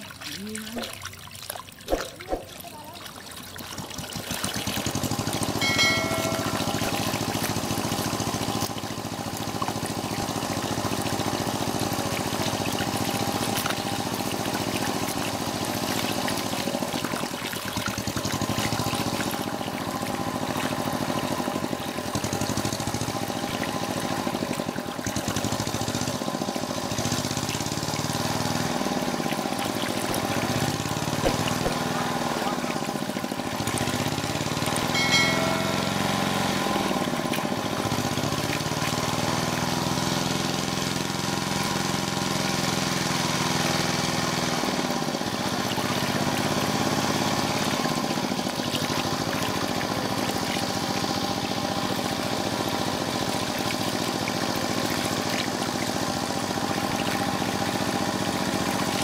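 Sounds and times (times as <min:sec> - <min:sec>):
water pouring over rock: 0:00.0 - 0:05.6, 0:06.5 - 0:35.5, 0:36.6 - 0:59.0
small engine running: 0:03.4 - 0:59.0.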